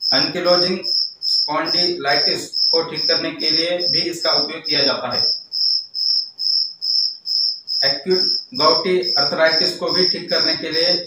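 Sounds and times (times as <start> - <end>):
cricket chirping: 0.0 - 11.0
man speaking: 0.2 - 5.3, 7.8 - 11.0.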